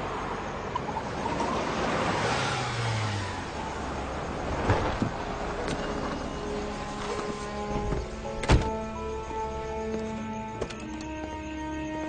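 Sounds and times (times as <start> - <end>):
car driving along street: 0.0 - 12.0.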